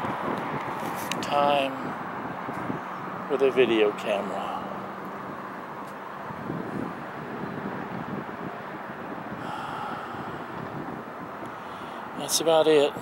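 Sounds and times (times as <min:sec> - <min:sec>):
distant freeway traffic hum: 0:00.0 - 0:13.0
wind buffeting microphone: 0:00.0 - 0:13.0.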